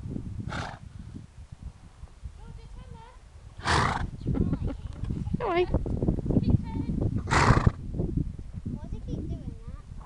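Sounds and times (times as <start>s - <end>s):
pony snorting: 0.5s - 0.8s, 3.6s - 4.1s, 7.2s - 7.8s.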